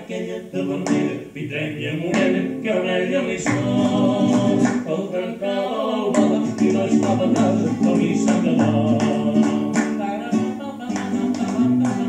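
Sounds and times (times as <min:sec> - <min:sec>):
man singing: 0:00.0 - 0:12.0
strummed classical guitar: 0:00.0 - 0:12.0.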